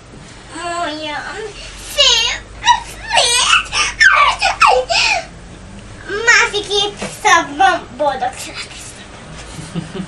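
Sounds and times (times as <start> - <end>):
young girl laughing: 2.5 - 5.3.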